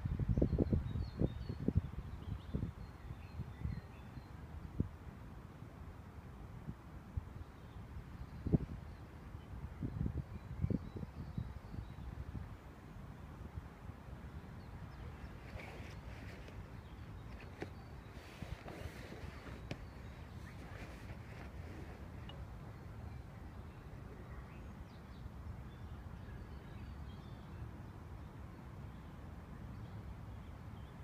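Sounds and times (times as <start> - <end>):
bird chirp: 14.4 - 27.7
nylon fabric rustling: 15.0 - 16.7, 17.3 - 22.3.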